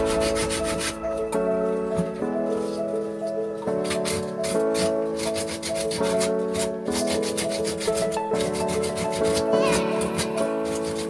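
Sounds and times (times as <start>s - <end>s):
held chords music: 0.0s - 11.0s
wooden block rubbing surface: 0.0s - 11.0s.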